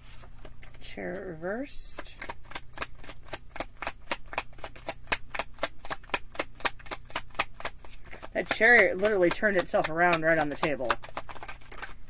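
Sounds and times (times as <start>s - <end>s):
cards shuffled by hand: 2.0s - 12.0s.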